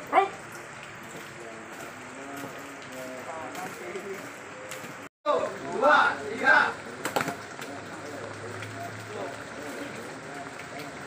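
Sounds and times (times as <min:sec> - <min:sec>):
background noise: 0:00.0 - 0:11.0
faint voices: 0:01.0 - 0:11.0.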